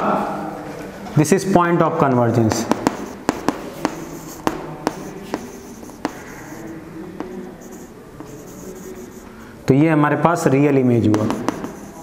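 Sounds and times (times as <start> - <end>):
chalk tapping on board: 2.4 - 9.5, 11.0 - 12.0
chalk scratching on chalkboard: 2.4 - 9.6, 11.0 - 12.0.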